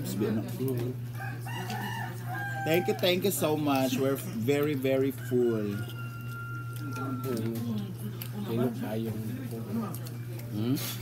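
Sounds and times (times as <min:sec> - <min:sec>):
rooster crowing: 0:01.2 - 0:03.3, 0:05.1 - 0:07.5.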